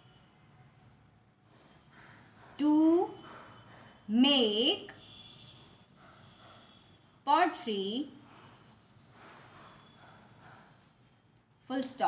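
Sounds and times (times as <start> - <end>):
pen writing on paper: 3.1 - 3.6, 5.6 - 7.1, 8.0 - 11.2.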